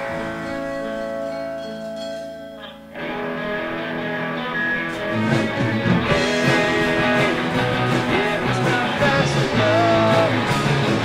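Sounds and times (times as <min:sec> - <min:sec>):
rock band with electric guitar: 0:00.0 - 0:11.0.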